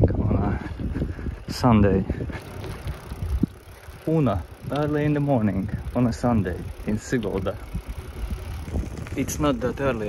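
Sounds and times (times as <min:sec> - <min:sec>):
bicycle tyres rumbling on pavement: 0:00.0 - 0:10.0
bike clicks and rattles: 0:00.1 - 0:10.0.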